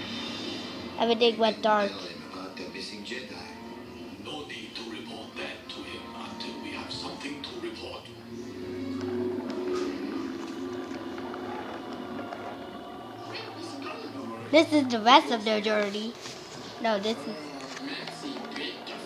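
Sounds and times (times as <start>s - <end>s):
background film music: 0.0s - 19.0s
film dialogue from television: 0.0s - 19.0s.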